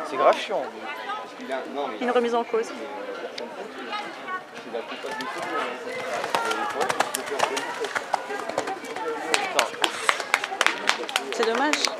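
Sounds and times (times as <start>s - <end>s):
people talking: 4.8s - 11.9s.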